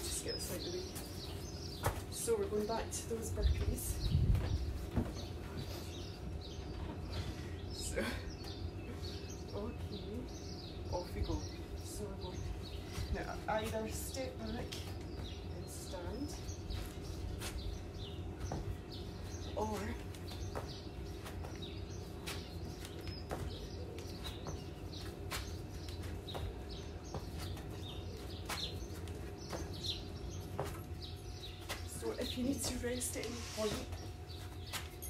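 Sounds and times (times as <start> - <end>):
birds chirping: 0.0 - 35.0
low background hum: 0.0 - 35.0.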